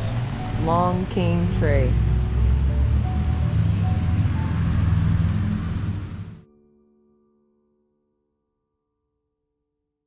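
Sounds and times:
traffic on wet road: 0.0 - 6.4
soft background music: 0.0 - 8.9.

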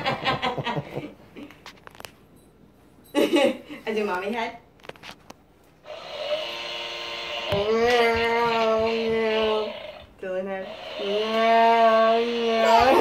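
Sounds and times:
toy weed trimmer buzzing hum: 5.9 - 13.0.

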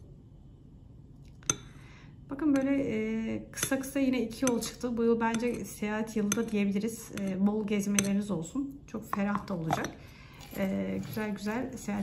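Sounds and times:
saucer clinking against cup: 9.1 - 11.4.

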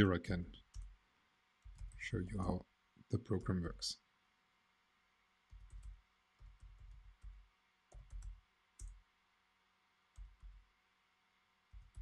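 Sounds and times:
typing on computer keyboard: 1.6 - 2.0, 5.5 - 9.0, 11.7 - 12.0.

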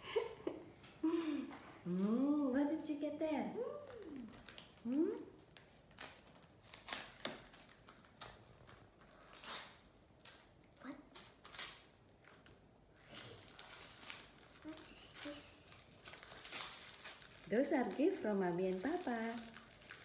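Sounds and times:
wrapping paper rustling: 3.6 - 20.0.

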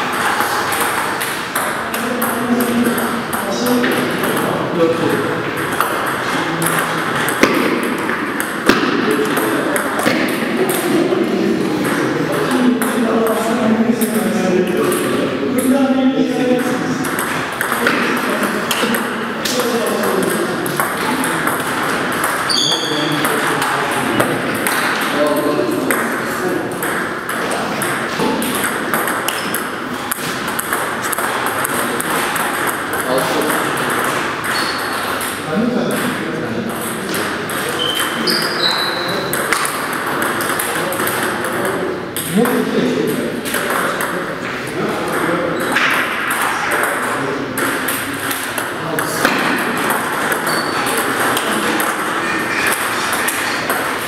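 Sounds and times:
table tennis balls ticking: 0.0 - 54.0
voices talking: 0.0 - 54.0.

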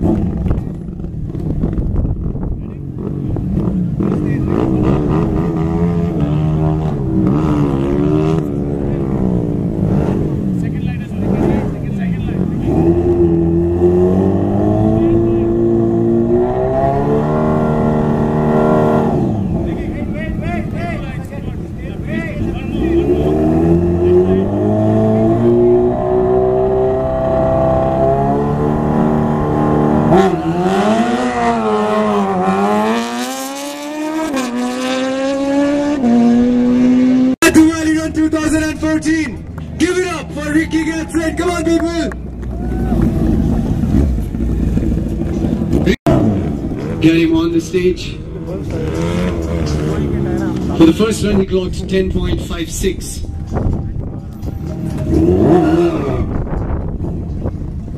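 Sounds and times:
motorcycle engine revving: 0.0 - 40.4, 41.6 - 52.5, 53.2 - 57.9.

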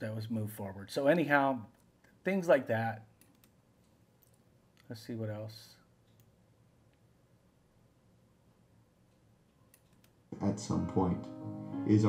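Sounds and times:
man speaking: 0.0 - 3.1, 4.9 - 5.9, 10.3 - 12.0
computer mouse clicks: 3.2 - 4.9, 6.0 - 7.0, 9.1 - 10.2.

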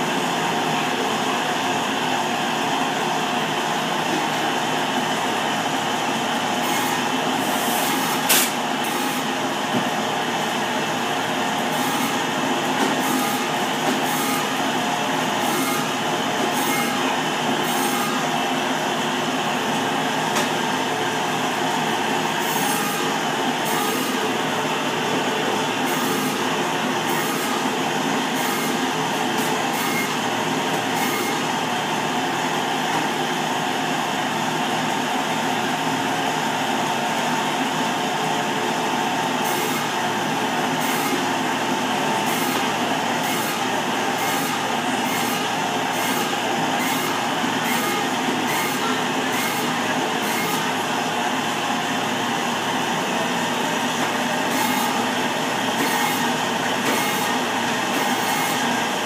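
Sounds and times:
loud machinery drone: 0.0 - 59.0.

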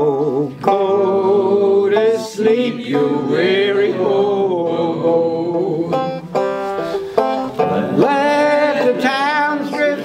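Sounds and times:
banjo strummed chords: 0.0 - 10.0.

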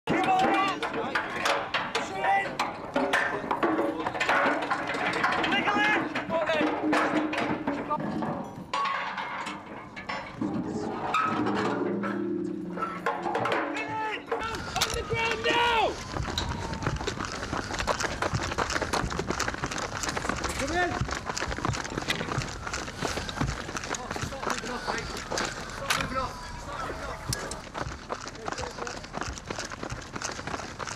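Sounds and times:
knocks and clatter: 0.0 - 26.2
indistinct voices: 10.0 - 29.7.

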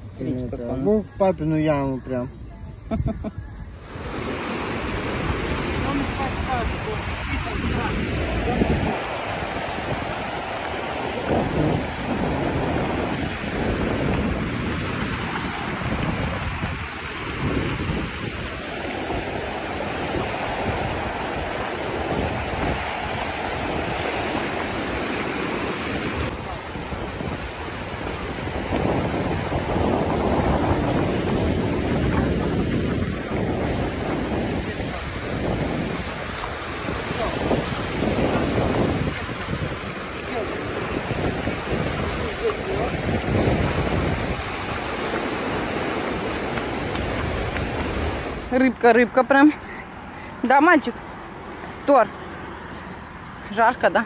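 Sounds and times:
wind rumbling on microphone: 0.0 - 54.0
small waves breaking: 3.8 - 54.0.

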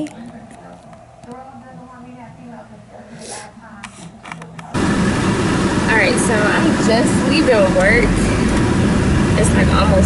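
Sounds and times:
car engine rumble inside car: 4.7 - 10.0.

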